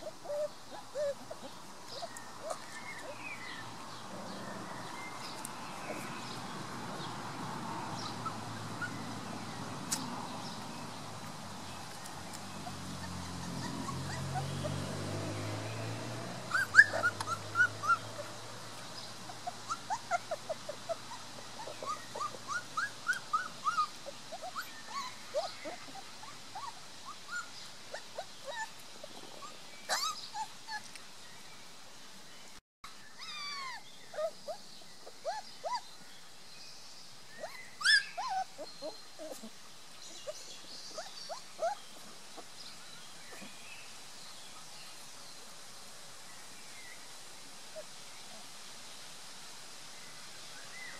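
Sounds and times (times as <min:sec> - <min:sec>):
puppies whimpering and squeaking: 0:00.0 - 0:03.2, 0:08.0 - 0:09.3, 0:12.3 - 0:14.9, 0:16.5 - 0:18.4, 0:19.2 - 0:31.0, 0:33.2 - 0:35.8, 0:37.4 - 0:39.5, 0:40.2 - 0:42.5.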